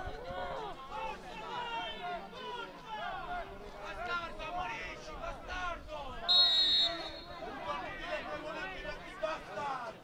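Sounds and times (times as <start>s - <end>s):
voices of players and spectators: 0.0s - 10.0s
referee's whistle blast: 6.3s - 7.4s.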